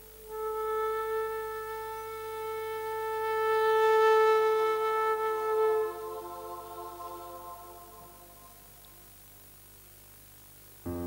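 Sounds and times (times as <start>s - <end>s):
flute holding a long note: 0.0s - 8.8s.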